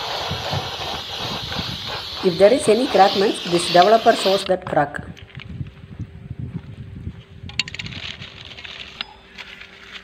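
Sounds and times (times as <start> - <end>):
aerosol can spraying hiss: 0.0 - 4.6.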